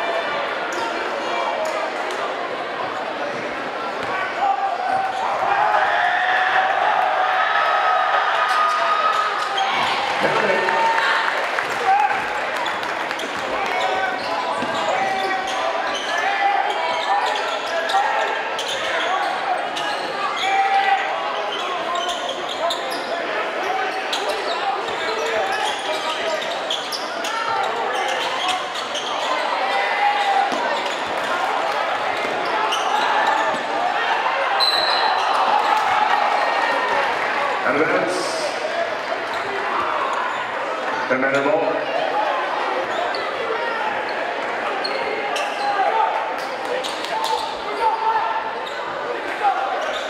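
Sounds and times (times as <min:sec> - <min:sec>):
crowd chatter: 0:00.0 - 0:50.0.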